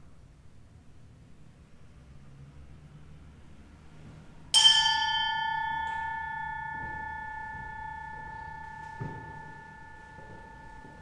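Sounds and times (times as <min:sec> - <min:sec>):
bell ringing: 0:04.6 - 0:11.0
soft knock: 0:08.6 - 0:11.0.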